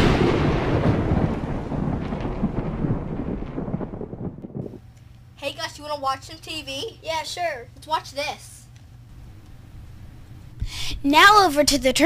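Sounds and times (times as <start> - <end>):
deep rolling rumble: 0.0 - 4.9, 9.0 - 10.7.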